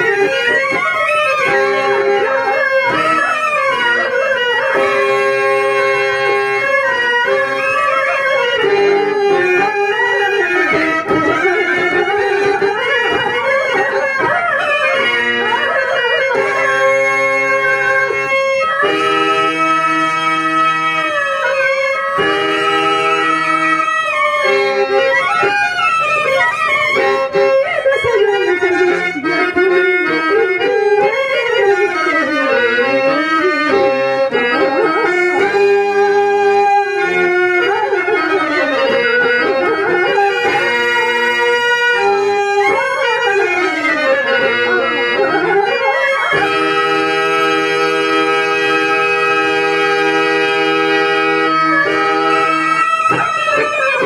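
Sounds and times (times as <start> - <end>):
harmonium: 0.0 - 54.0.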